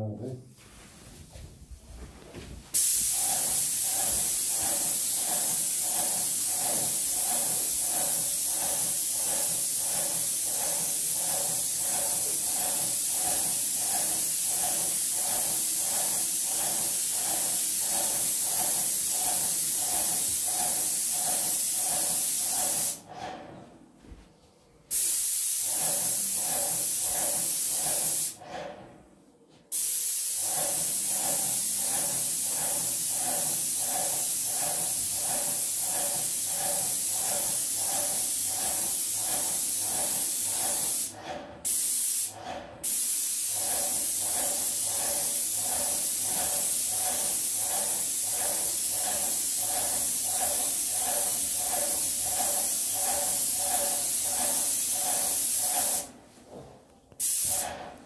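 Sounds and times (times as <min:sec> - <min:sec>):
paint sprayer hissing: 0:02.7 - 0:23.1, 0:24.9 - 0:28.4, 0:29.7 - 0:56.2, 0:57.2 - 0:58.0.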